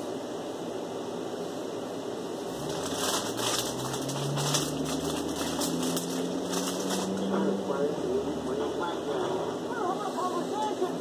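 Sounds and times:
plastic bag crinkling: 2.6s - 7.2s.

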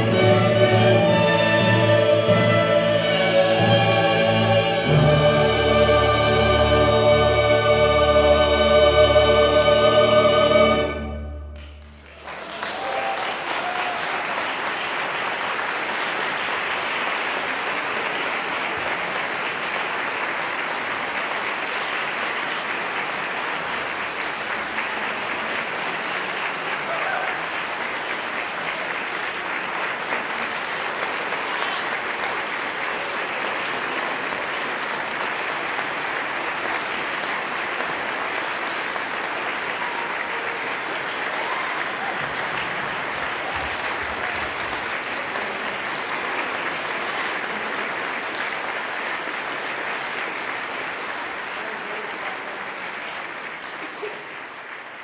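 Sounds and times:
audience applauding: 11.6s - 55.0s.

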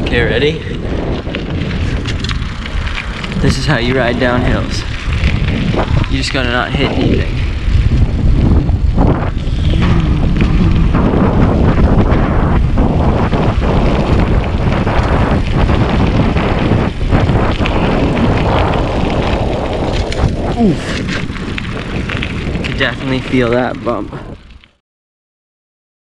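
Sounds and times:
tyres on rough asphalt: 0.0s - 24.8s
wind buffeting microphone: 0.0s - 24.8s.

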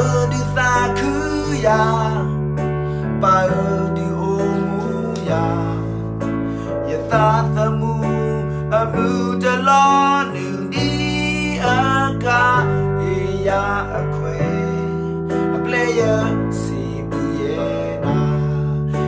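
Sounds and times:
man singing worship song: 0.0s - 19.0s.

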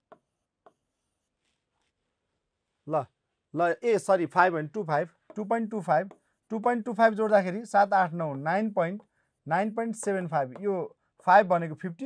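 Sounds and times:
marker strokes on board: 0.0s - 2.8s, 4.4s - 7.5s, 9.8s - 10.8s.

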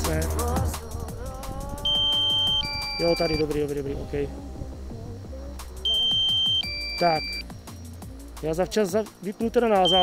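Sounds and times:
background music: 0.0s - 10.0s
electronic warning beeps: 1.8s - 3.7s, 5.8s - 7.5s, 9.8s - 10.0s.

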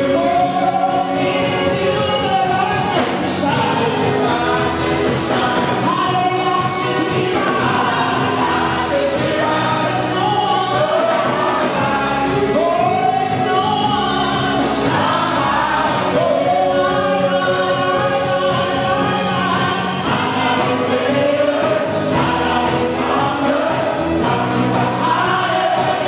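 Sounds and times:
woman singing gospel: 0.0s - 26.0s.

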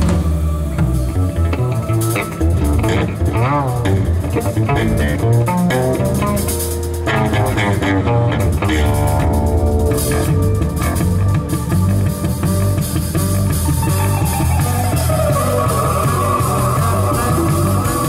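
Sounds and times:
live jazz band playing: 0.0s - 18.0s
plucked double bass: 0.0s - 18.0s.

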